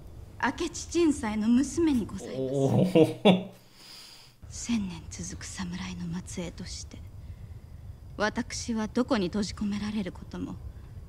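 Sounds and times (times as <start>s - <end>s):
low steady hum: 0.0s - 11.0s
soft speech: 0.4s - 3.1s.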